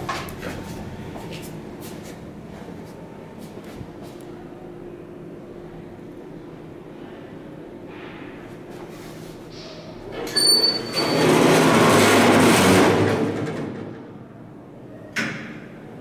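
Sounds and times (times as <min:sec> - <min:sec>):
steady low hum: 0:00.0 - 0:10.1
elevator doors sliding shut: 0:07.9 - 0:14.2
loud noisy rumble: 0:11.1 - 0:14.7.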